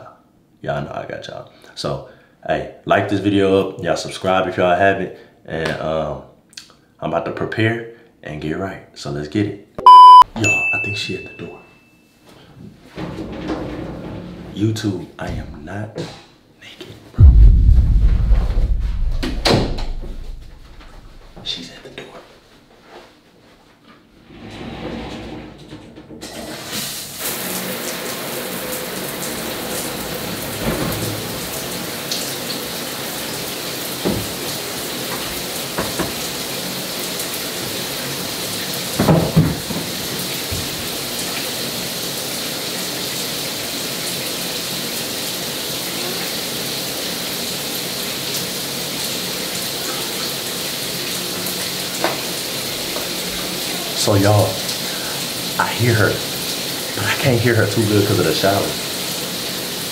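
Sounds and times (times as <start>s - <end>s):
short knock: 17.2s - 21.3s
shower spray running: 39.8s - 59.9s.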